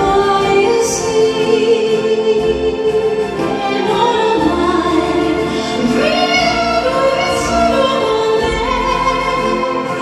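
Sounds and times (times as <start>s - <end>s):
orchestra strings playing slow ballad: 0.0s - 10.0s.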